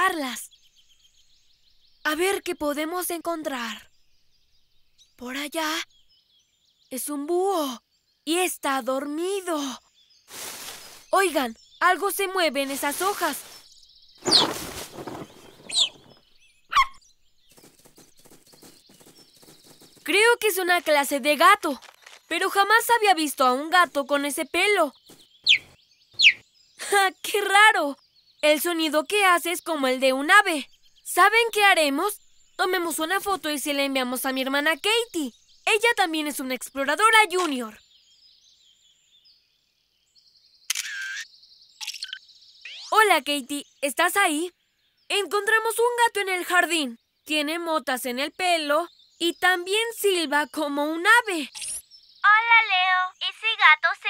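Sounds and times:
high bird-like chirps: 9.0 - 27.5, 40.7 - 44.6, 48.5 - 54.0
leafy bush rustling: 10.2 - 16.4
camera shutter sound effect: 40.7 - 41.2.

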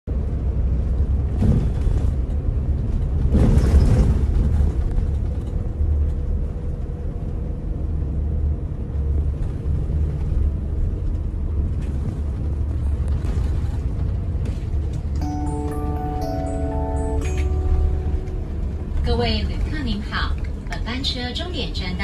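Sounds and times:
bus engine and road rumble: 0.0 - 22.0.

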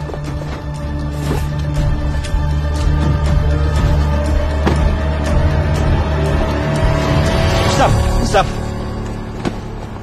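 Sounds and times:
tense background music drone: 0.0 - 10.0.

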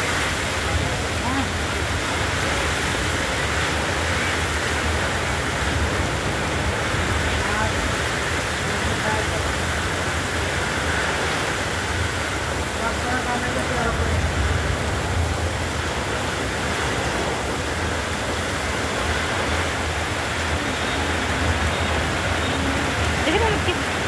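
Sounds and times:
heavy rain pouring: 0.0 - 24.0.

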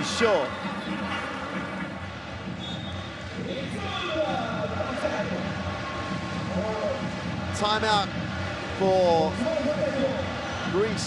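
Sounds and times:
crowd din of many voices: 0.0 - 11.0.

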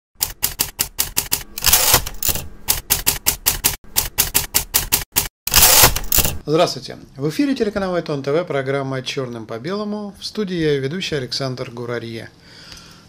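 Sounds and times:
typewriter key strikes: 0.2 - 6.4
typewriter rasping: 0.2 - 6.4.

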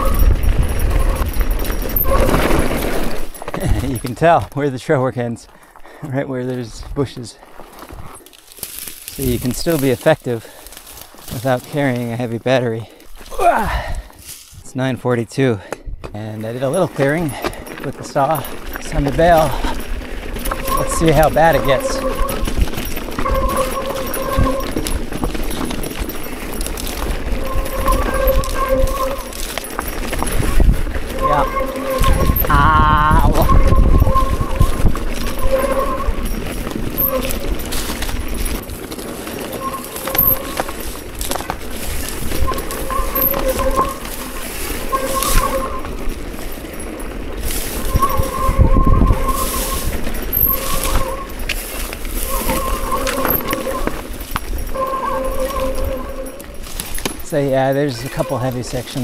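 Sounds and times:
disc brakes squealing: 0.0 - 4.2, 16.4 - 59.0
wind rumbling on microphone: 0.0 - 4.2, 16.9 - 59.0
bike rattling: 0.0 - 59.0
brush scraping past: 33.4 - 57.0.

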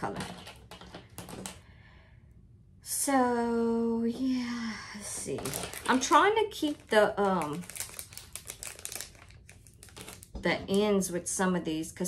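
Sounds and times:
packaging crinkling: 5.2 - 10.4.

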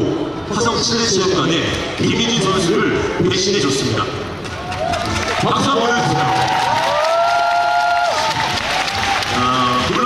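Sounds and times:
audience applauding: 4.5 - 10.0.

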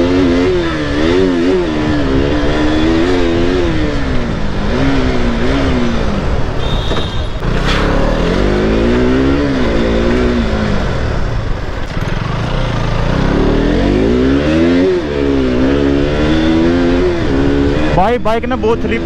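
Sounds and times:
motorcycle engine revving: 0.0 - 19.0.

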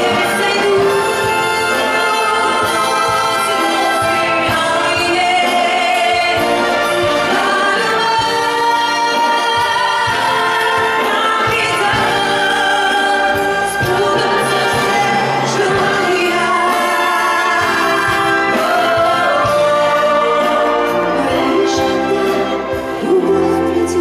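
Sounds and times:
symphony orchestra strings: 0.0 - 24.0
woman singing: 0.0 - 24.0.

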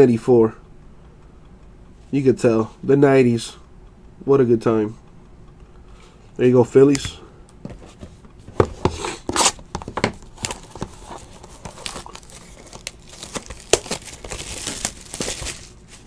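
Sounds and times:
plastic card cases clicking: 8.7 - 15.7
wrapper crinkling and tearing: 10.2 - 16.0.

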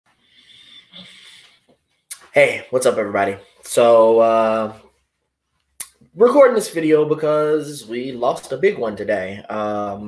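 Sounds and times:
man breathing: 0.1 - 2.1.

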